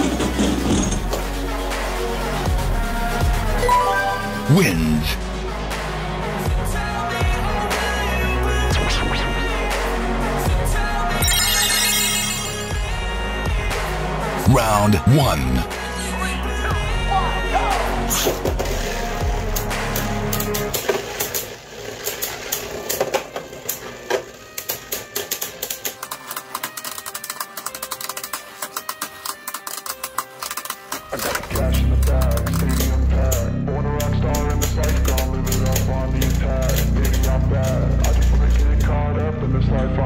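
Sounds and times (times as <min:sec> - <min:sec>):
bass-heavy background music: 0:00.0 - 0:21.2, 0:23.7 - 0:40.0
spinning tops clacking in plastic arena: 0:20.4 - 0:31.4.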